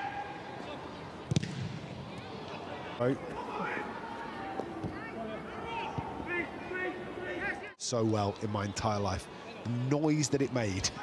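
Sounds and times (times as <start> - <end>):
pitch-side background noise: 0.0 - 11.0
football kick thud: 1.3 - 1.9.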